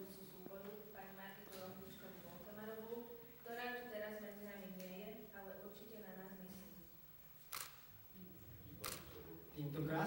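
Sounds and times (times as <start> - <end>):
camera shutter click: 7.5 - 7.8, 8.8 - 9.1.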